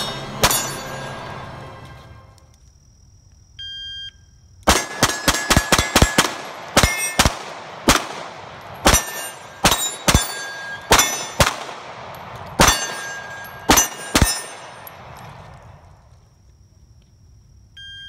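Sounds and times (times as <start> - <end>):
steel targets ringing: 0.0 - 1.6, 4.7 - 7.3, 8.6 - 11.5, 12.6 - 15.1
pistol shots: 0.1 - 1.1, 4.6 - 15.7.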